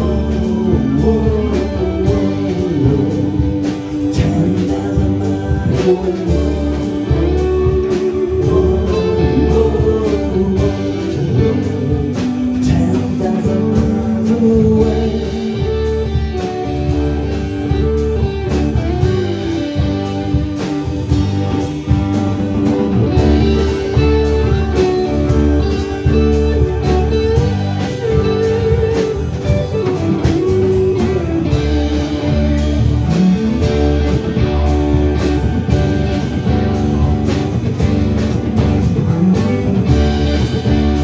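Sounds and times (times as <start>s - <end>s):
bass: 0.0s - 41.0s
electric and acoustic guitars: 0.0s - 41.0s
keyboard: 0.0s - 41.0s
steady drum beat: 0.0s - 41.0s.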